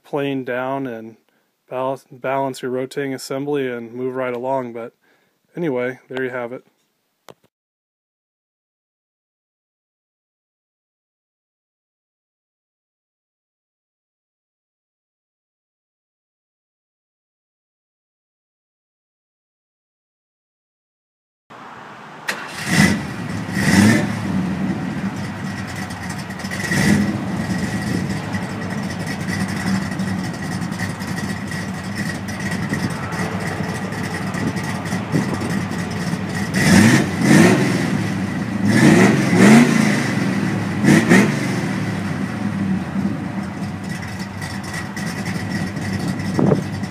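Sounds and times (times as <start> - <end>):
car engine idling and revving: 21.5 - 46.9.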